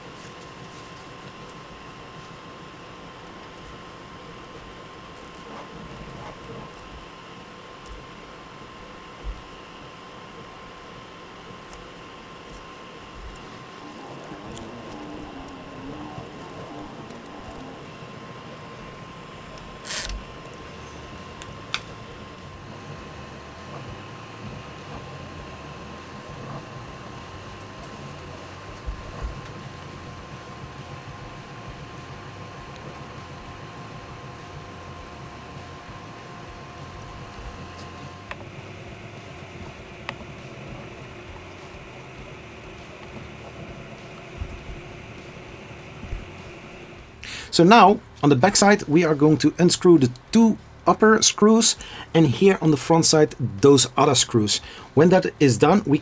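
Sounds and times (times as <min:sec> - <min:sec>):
small cooling fan humming: 0:00.0 - 0:56.0.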